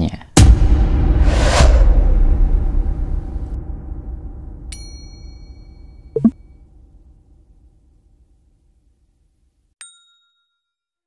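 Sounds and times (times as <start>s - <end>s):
low rumble: 0.5s - 4.8s.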